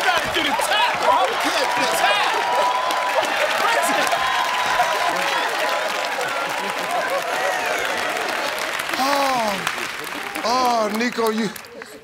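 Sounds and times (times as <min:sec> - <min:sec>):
audience applauding: 0:00.0 - 0:12.0.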